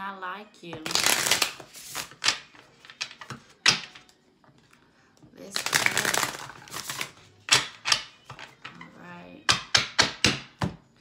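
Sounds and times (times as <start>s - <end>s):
cards snapping: 0.8s - 4.0s, 5.6s - 8.4s
cards riffling: 0.9s - 4.0s, 5.6s - 8.4s.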